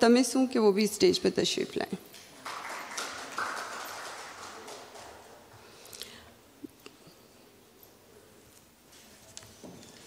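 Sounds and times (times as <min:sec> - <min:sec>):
faint audience applause: 0:02.3 - 0:05.8.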